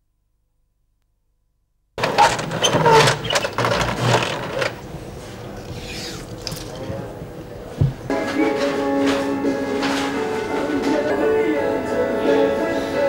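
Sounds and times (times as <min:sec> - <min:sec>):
roller shutter rattling: 0:02.0 - 0:04.8
roller shutter squeaks: 0:02.0 - 0:04.8
handling noise: 0:02.0 - 0:05.5, 0:06.2 - 0:08.4
dull thump: 0:07.8 - 0:08.1.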